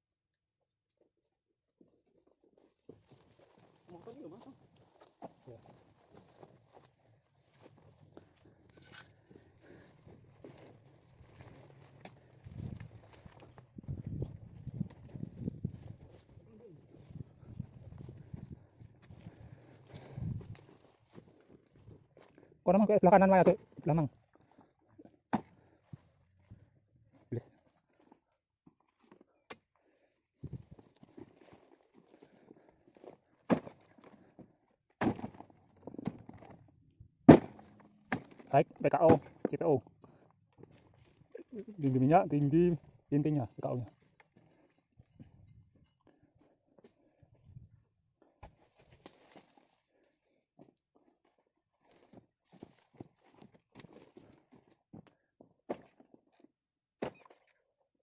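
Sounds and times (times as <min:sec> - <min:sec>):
footsteps on dirt and leaves: 0:02.5 - 0:24.8, 0:30.4 - 0:36.7, 0:39.2 - 0:45.4, 0:48.2 - 0:55.1
fruit bunches thudding into wooden cart: 0:35.0 - 0:36.5, 0:37.3 - 0:38.5.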